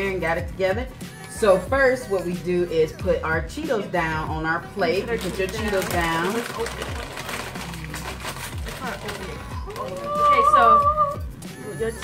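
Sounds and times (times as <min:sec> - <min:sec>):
background music with beat: 0:00.0 - 0:12.0
plastic snack bag crinkling: 0:05.0 - 0:10.6.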